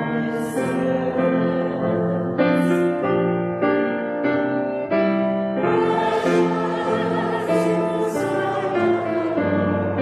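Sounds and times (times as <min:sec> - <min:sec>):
church choir singing: 0:00.0 - 0:10.0.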